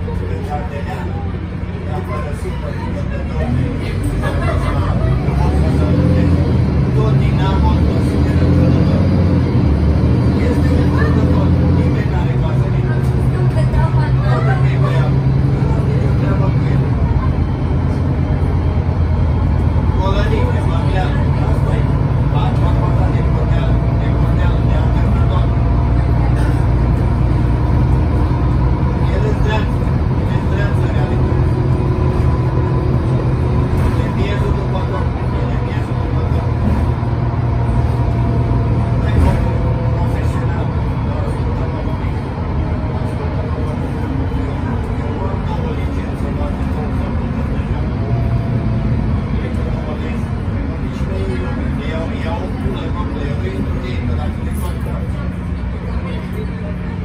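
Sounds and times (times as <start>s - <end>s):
bus engine drone: 0.0s - 57.0s
road noise: 0.0s - 57.0s.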